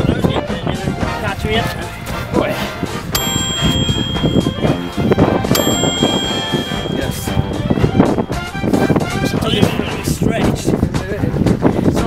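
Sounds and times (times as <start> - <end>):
background music: 0.0 - 11.5
bell-like dings: 3.2 - 8.8.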